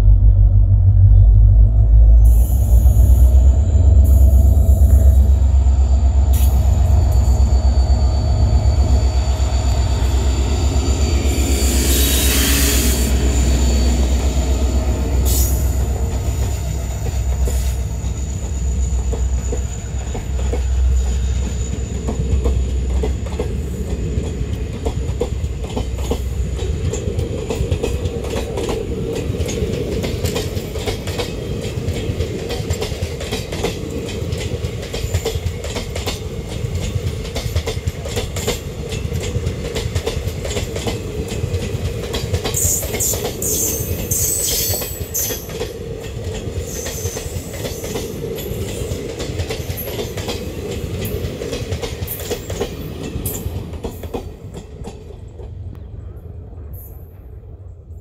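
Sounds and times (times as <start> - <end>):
locomotive engine throb: 0.0 - 28.4
wheels clacking over rail joints: 13.5 - 55.7.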